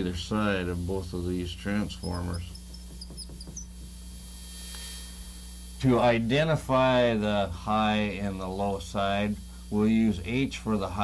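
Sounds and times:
low electrical hum: 0.0 - 11.0
marker squeaking on whiteboard: 1.9 - 3.8.

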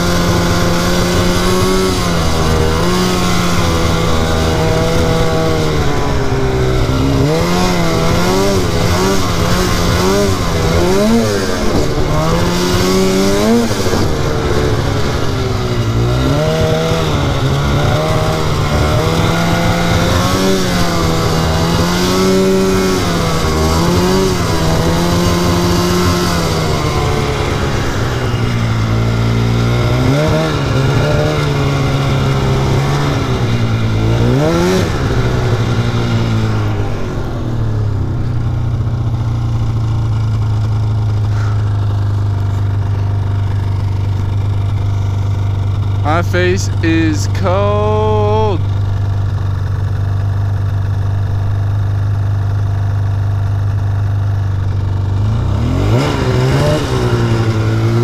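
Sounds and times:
snowmobile engine running: 0.0 - 58.0.

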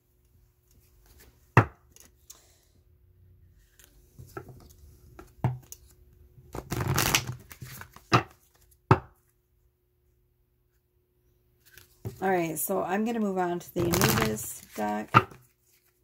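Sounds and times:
cards rustling: 3.6 - 8.8, 13.8 - 16.0.

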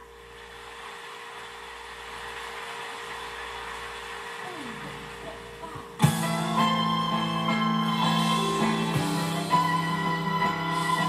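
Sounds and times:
faint constant hum: 0.0 - 11.0
steady background hiss: 0.0 - 11.0.

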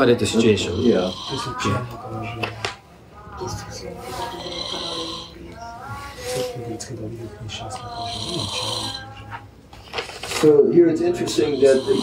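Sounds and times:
man murmuring: 0.3 - 1.9, 7.8 - 9.1, 11.1 - 12.0.

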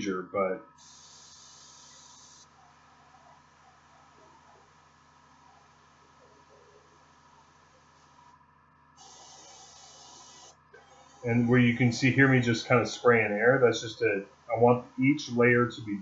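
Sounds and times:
low room hum: 0.0 - 16.0
airbrush hissing: 0.8 - 2.5, 9.0 - 11.6.

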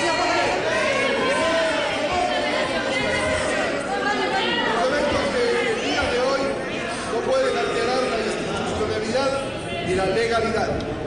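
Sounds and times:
people talking in a hall: 0.0 - 11.0.

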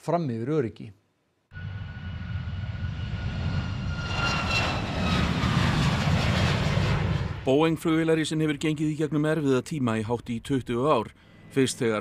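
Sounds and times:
jet engines roaring with whine: 1.6 - 8.2.

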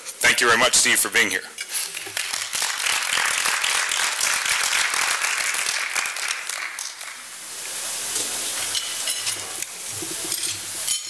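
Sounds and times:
audience applauding: 1.9 - 7.3.

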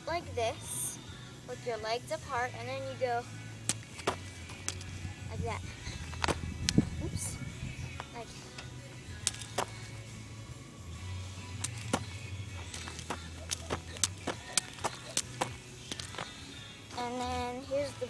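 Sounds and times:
low steady hum: 0.0 - 18.0
jump rope slapping the ground: 12.8 - 16.2.

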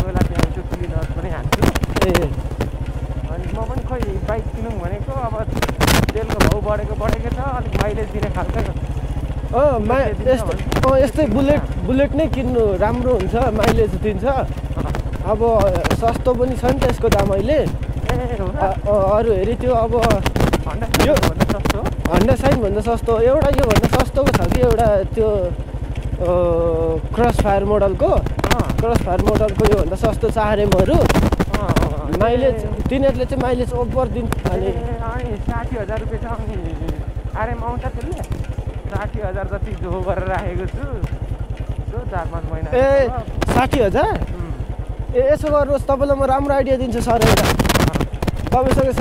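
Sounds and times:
man talking: 0.0 - 2.4, 3.2 - 41.2, 41.8 - 49.0
person speaking: 0.0 - 41.2, 41.8 - 49.0
motorcycle engine running: 0.0 - 49.0.

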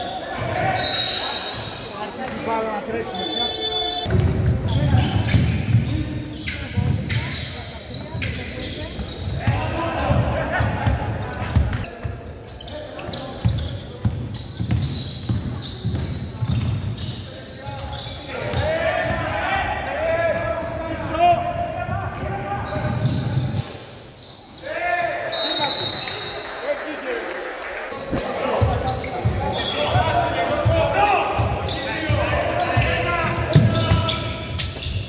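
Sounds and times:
basketball dribbling on wooden court: 13.4 - 16.8.

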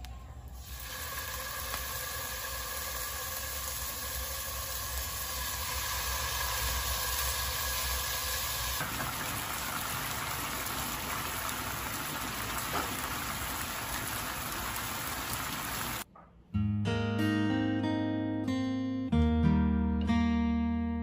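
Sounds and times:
bubbling hiss of simmering: 0.6 - 16.0
meat sizzling in hot oil: 0.6 - 16.0.

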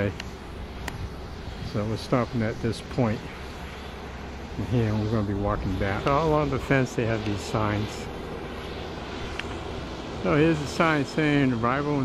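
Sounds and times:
outdoor background rushing: 0.0 - 12.0.

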